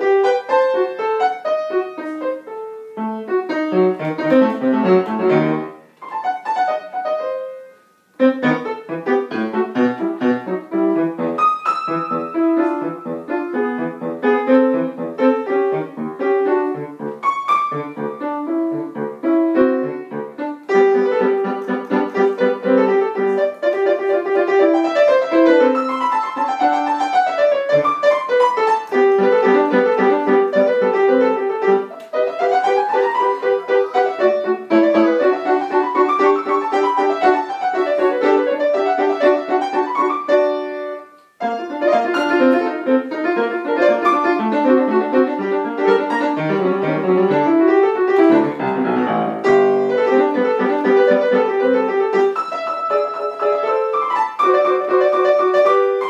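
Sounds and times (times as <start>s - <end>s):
fast classical piano: 0.0s - 56.0s.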